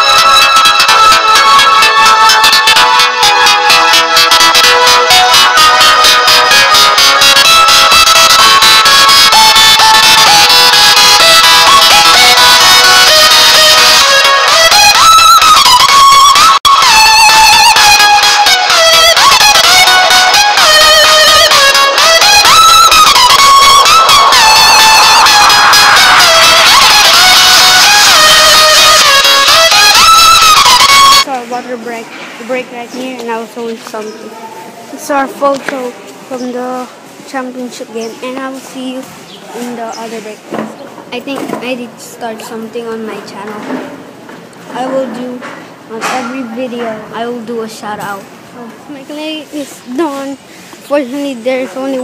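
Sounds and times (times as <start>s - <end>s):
electronic music with sliding synth: 0.0s - 31.3s
boy speaking: 31.3s - 40.5s, 41.1s - 43.8s, 44.7s - 52.0s.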